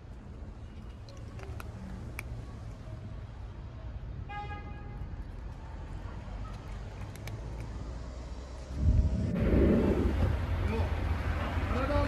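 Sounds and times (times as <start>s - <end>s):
cat crunching dry kibble: 0.0s - 3.1s, 5.0s - 8.4s
street traffic rumble: 0.0s - 12.0s
vehicle passing: 6.0s - 12.0s.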